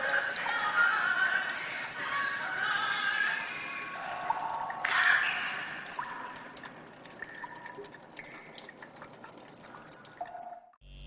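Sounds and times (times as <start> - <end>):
water dripping: 0.0 - 10.8.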